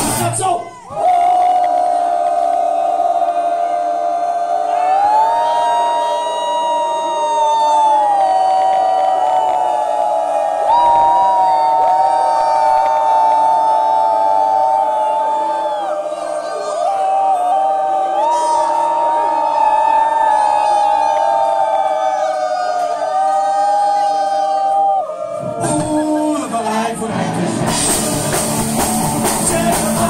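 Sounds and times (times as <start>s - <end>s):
loud rock music: 0.0s - 0.5s, 27.1s - 30.0s
crowd cheering and shouting: 0.0s - 30.0s.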